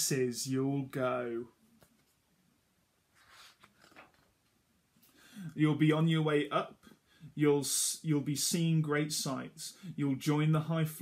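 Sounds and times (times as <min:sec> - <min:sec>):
book page turning: 0:03.2 - 0:04.4.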